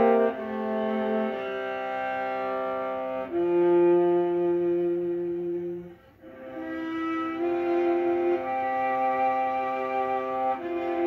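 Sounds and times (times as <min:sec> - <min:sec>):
bowed viola: 0:00.0 - 0:11.0.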